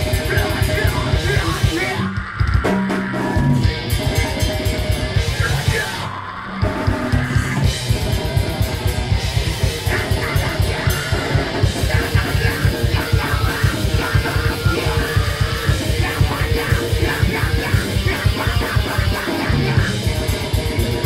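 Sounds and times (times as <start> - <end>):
distorted guitars: 0.0 - 21.0
rapid driving drums: 0.0 - 21.0.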